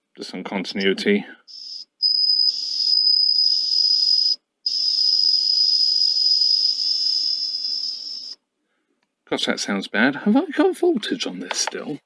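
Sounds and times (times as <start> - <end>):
multimeter continuity beep: 1.5 - 8.4.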